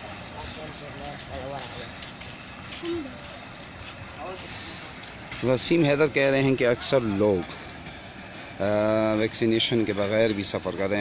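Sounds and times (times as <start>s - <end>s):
faint voices: 0.0s - 11.0s
outdoor background noise: 0.0s - 11.0s.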